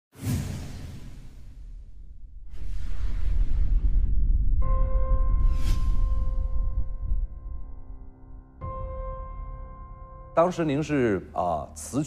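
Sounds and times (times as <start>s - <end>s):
whoosh with deep boom: 0.2s - 10.3s.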